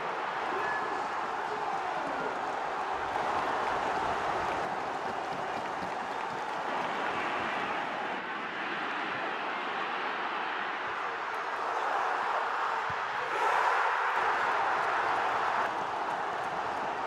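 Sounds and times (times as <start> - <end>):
stadium crowd din: 0.0 - 17.0.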